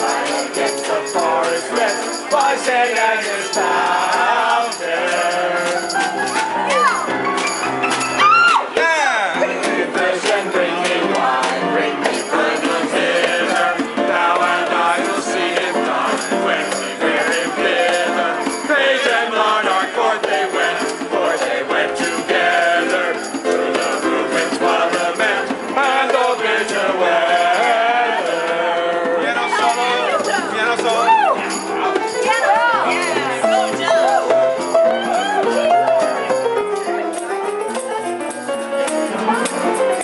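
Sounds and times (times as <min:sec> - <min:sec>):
group singing carols: 0:00.0 - 0:07.6, 0:09.2 - 0:37.2
shaker rattling: 0:00.0 - 0:08.2
hand drum beat: 0:00.0 - 0:40.0
upright piano playing: 0:00.0 - 0:40.0
electric keyboard: 0:31.4 - 0:40.0.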